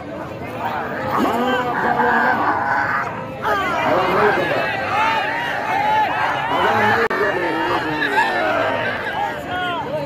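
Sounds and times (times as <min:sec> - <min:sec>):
crowd of men shouting and cheering: 0:00.3 - 0:10.0.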